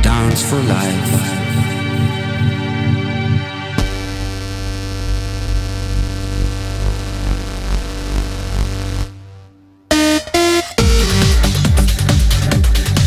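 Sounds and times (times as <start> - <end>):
pulsing bass: 0.0 - 13.0
held synthesizer chord: 8.8 - 11.6.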